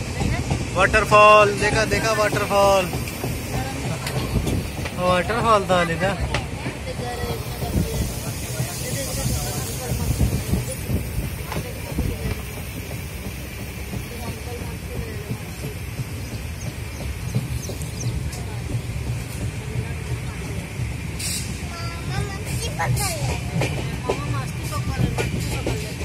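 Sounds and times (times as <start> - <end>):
faint voices: 0.0 - 26.0
moving vehicle rumble: 0.0 - 26.0.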